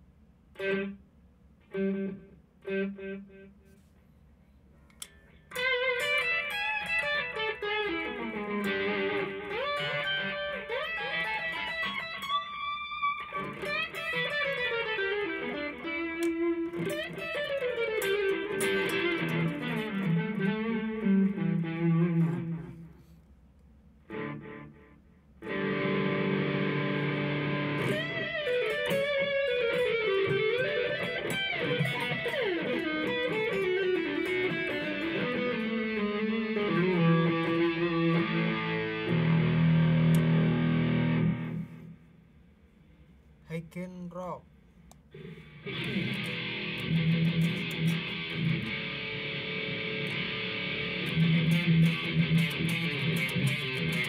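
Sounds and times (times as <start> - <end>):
electric guitar lead phrase: 5.5 - 22.8, 24.1 - 41.8, 45.2 - 54.0.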